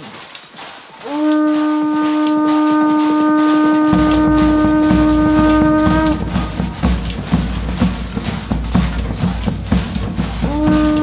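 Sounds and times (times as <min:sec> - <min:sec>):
wooden horn long held note: 0:01.0 - 0:09.4, 0:10.2 - 0:11.0.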